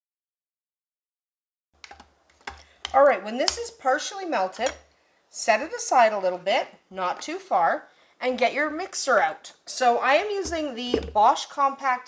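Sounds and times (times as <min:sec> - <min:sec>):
spoon stirring in a pot: 0:01.8 - 0:03.8, 0:04.5 - 0:04.9.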